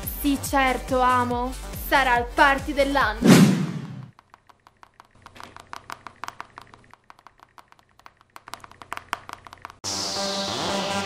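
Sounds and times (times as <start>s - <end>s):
upbeat electronic music: 0.0s - 4.1s
smartphone keyboard tapping clicks: 4.1s - 9.8s.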